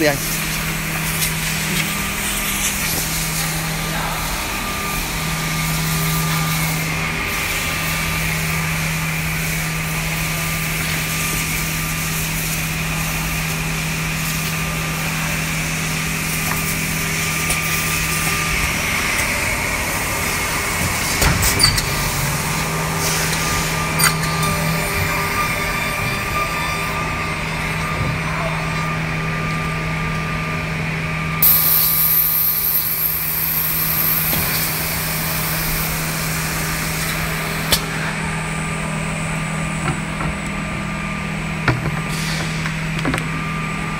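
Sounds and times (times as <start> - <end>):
machine motor hum: 12.7 - 41.7
high hiss: 31.4 - 37.3.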